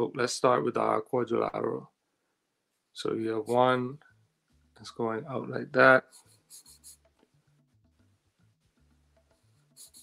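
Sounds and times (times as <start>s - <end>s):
drawing tool scratching paper: 6.0s - 7.0s, 9.5s - 10.0s.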